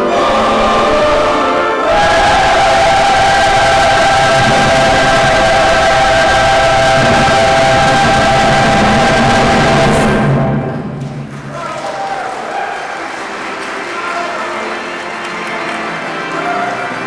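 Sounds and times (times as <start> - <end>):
crowd applause: 11.0 - 17.0.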